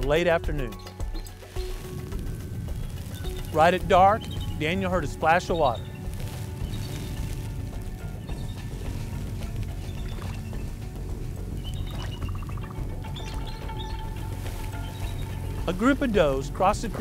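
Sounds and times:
background music: 0:00.0 - 0:17.0
deer splashing in creek: 0:07.3 - 0:16.4.

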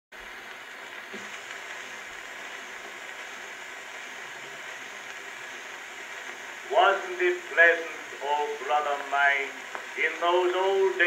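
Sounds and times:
record surface hiss: 0:00.1 - 0:11.0.

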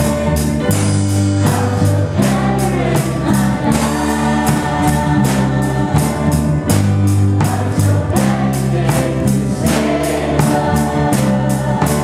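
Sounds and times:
choir singing worship song: 0:00.0 - 0:12.0
instrumental accompaniment with beat: 0:00.0 - 0:12.0.

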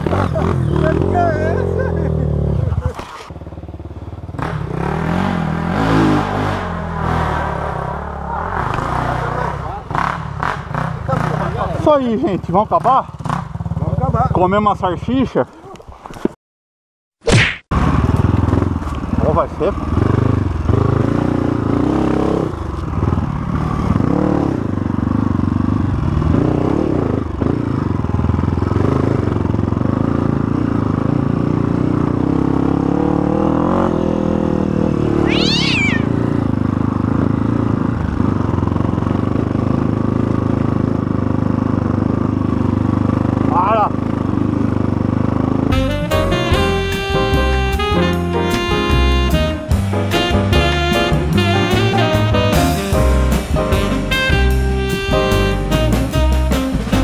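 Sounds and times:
dirt bike engine revving: 0:00.0 - 0:14.0, 0:17.8 - 0:39.0, 0:41.4 - 0:57.0.

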